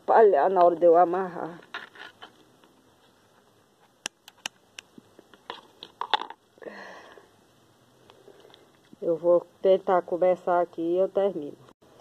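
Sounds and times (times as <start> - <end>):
sharp clicks and snaps: 4.0 - 6.4.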